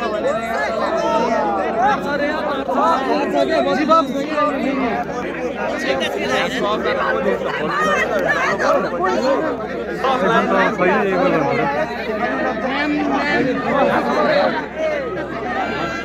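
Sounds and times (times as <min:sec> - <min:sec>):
overlapping chatter of voices: 0:00.0 - 0:16.0.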